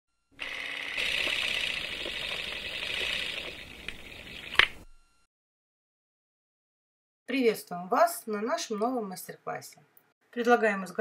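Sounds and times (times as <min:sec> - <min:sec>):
hissing static noise: 0:01.0 - 0:04.9.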